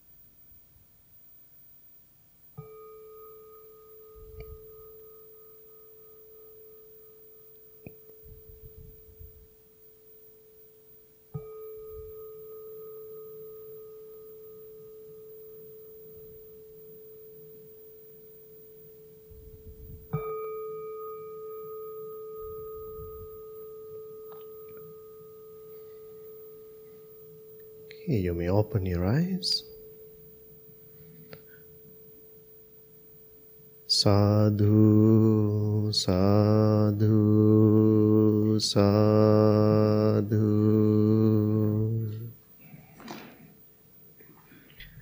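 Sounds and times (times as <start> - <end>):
meditation bell ringing: 2.6 - 42.4.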